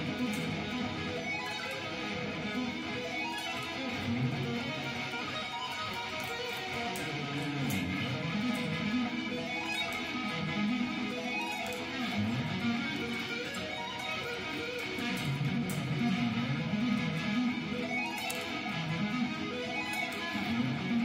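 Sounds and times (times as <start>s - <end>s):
electric guitar arpeggios: 0.0s - 21.0s.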